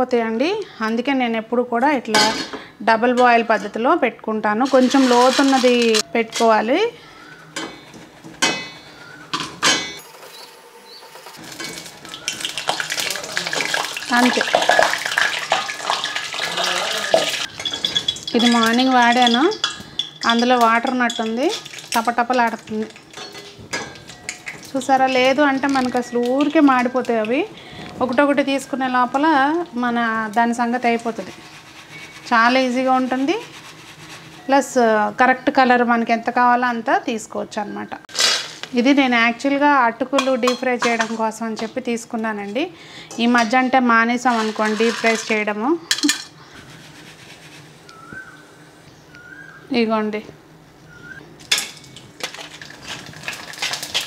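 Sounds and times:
woman talking: 0.0 - 7.0, 14.1 - 14.7, 18.3 - 19.6, 20.2 - 22.9, 24.7 - 31.4, 32.3 - 33.5, 34.5 - 38.1, 38.7 - 45.9, 49.7 - 50.4
oil sizzling around frying food: 4.4 - 6.7, 7.9 - 35.6, 38.1 - 48.3, 51.4 - 54.0
metal basket clinking against pan: 4.6 - 6.7, 11.4 - 27.4, 40.2 - 41.8, 42.4 - 46.4
snacks sizzling in hot oil: 10.3 - 27.5, 52.2 - 54.0
oil crackling and spattering: 11.1 - 20.9, 21.5 - 27.4, 51.5 - 54.0.

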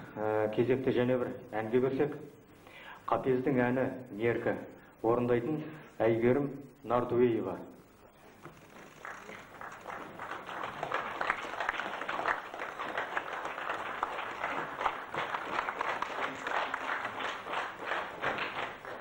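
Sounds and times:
audience applauding: 8.5 - 19.0.

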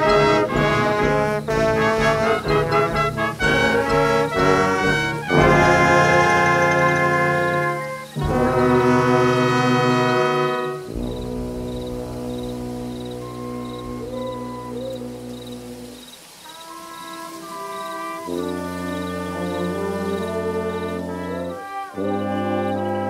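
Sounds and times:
live brass band music: 0.0 - 23.0.

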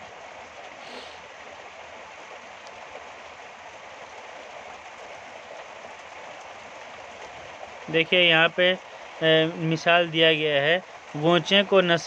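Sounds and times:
steady hiss: 0.8 - 1.3.

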